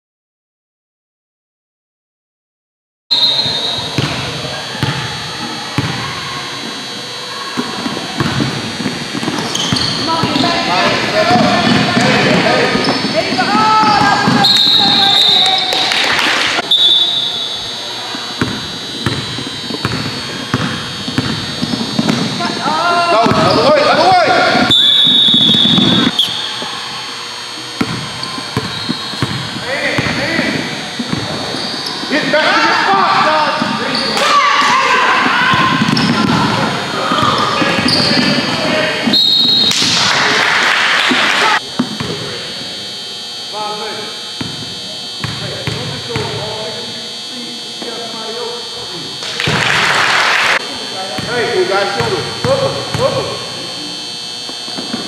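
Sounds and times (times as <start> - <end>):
basketball bouncing on hardwood floor: 5.8 - 6.1, 18.4 - 22.4, 23.2 - 23.6, 27.8 - 30.2, 35.5 - 38.4, 45.2 - 46.4
people shouting: 10.0 - 17.4, 22.4 - 27.1, 32.0 - 39.1.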